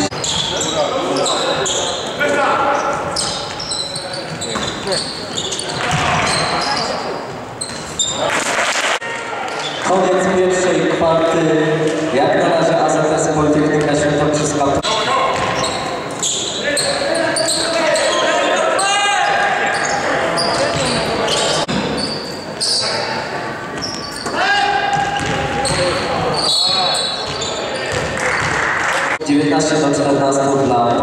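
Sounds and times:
basketball bouncing on wooden court: 5.8s - 6.6s, 15.3s - 16.2s, 20.5s - 21.1s, 24.9s - 26.4s, 27.2s - 28.6s
players calling out: 13.9s - 29.2s.

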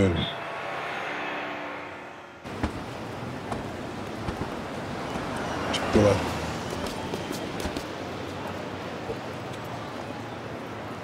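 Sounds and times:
outdoor traffic noise: 0.0s - 11.0s.

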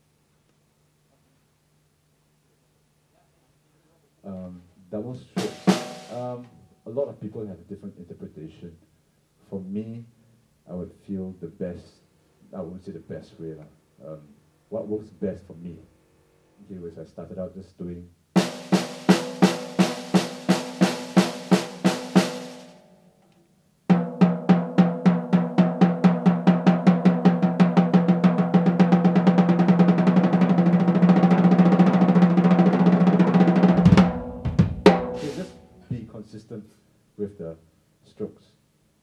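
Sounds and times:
snare drum roll: 5.3s - 6.4s, 18.4s - 22.8s, 23.9s - 36.1s.

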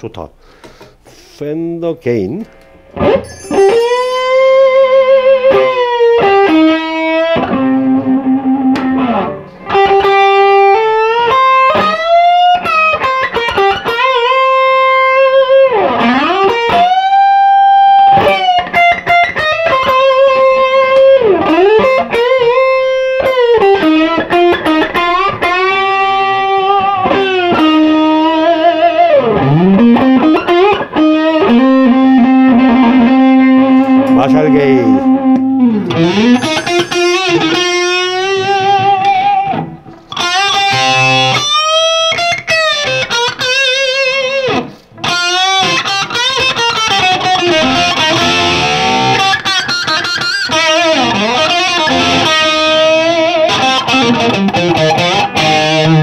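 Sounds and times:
overdriven electric guitar lead: 2.4s - 56.0s.

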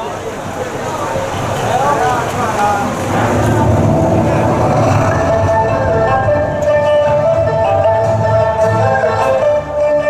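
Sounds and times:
steady low rumble: 0.4s - 8.7s
loud voice with bending pitch: 2.8s - 9.0s
dance music: 3.1s - 10.0s.

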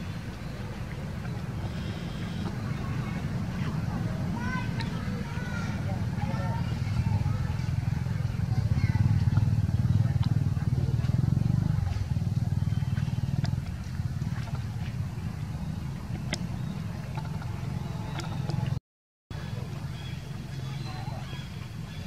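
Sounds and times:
engine low rumble: 0.0s - 22.0s
faint clicks: 4.7s - 5.0s.

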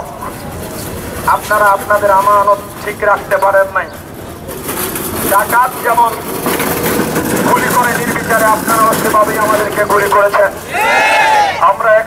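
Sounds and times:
outdoor background noise: 0.0s - 12.0s
man speaking through megaphone: 1.2s - 4.0s, 5.3s - 6.3s, 7.4s - 10.7s, 11.4s - 12.0s.

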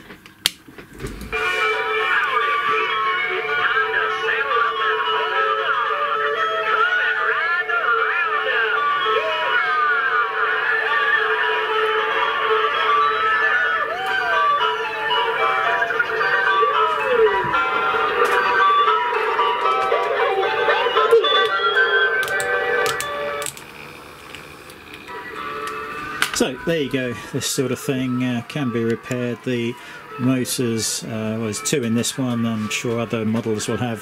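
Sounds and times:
tinny electronic fairground tune: 1.2s - 34.0s.

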